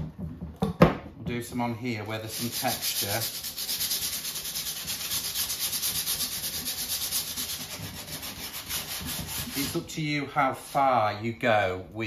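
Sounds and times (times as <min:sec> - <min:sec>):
hand sanding with sandpaper: 0:02.1 - 0:11.0.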